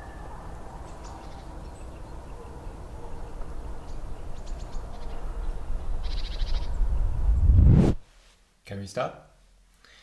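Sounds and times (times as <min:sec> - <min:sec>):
low rumble: 0:05.2 - 0:08.0
rush of noise: 0:06.2 - 0:08.0.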